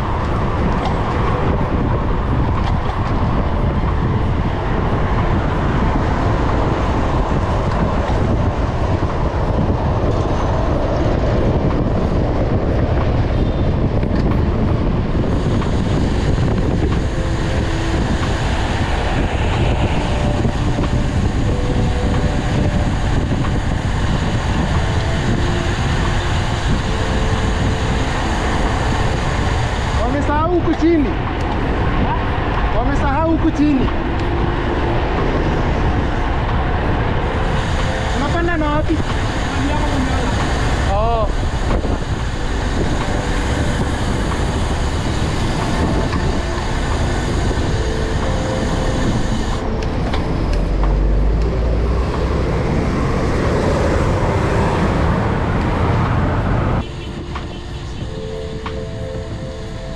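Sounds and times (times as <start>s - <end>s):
bus engine running: 0.0s - 59.9s
wind and road noise: 0.0s - 59.9s.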